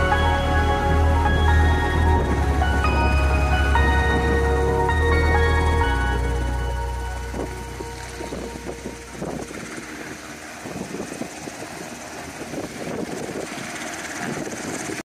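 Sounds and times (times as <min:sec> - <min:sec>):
background music with deep bass: 0:00.0 - 0:11.3
distant helicopter rushing: 0:05.9 - 0:15.0.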